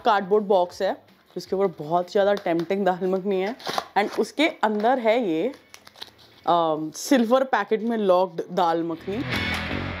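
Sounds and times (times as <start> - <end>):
woman talking: 0.0 - 5.6, 6.4 - 9.3
foil food pouch crinkling: 5.4 - 6.4.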